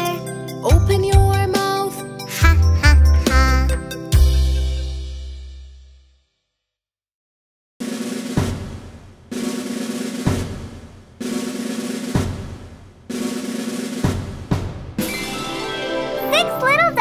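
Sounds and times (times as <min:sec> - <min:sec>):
snare drum roll: 0:07.8 - 0:15.1.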